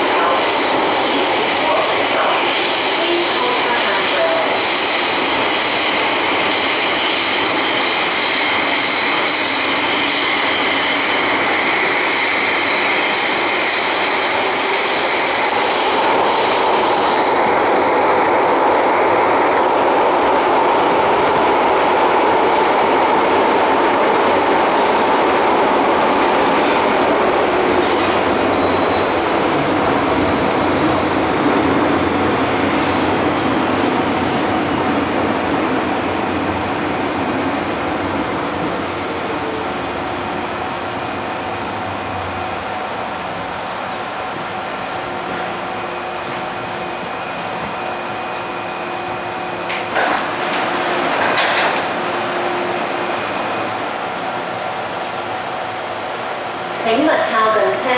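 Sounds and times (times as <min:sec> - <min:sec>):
subway wheels rumbling on rail: 0:00.0 - 0:57.9.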